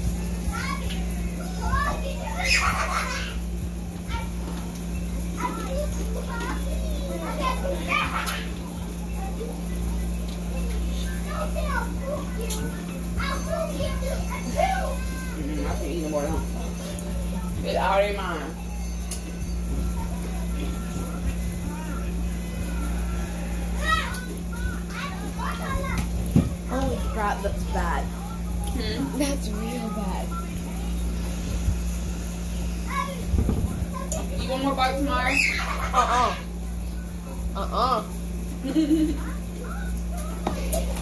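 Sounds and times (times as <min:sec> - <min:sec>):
children chattering and playing: 0:00.0 - 0:41.0
steady low hum: 0:00.0 - 0:41.0.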